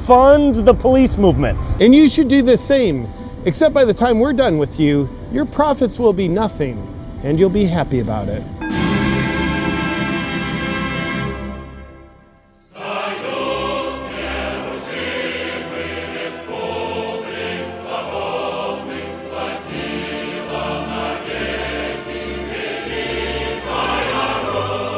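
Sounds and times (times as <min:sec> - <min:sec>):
choral music: 0:01.7 - 0:24.9.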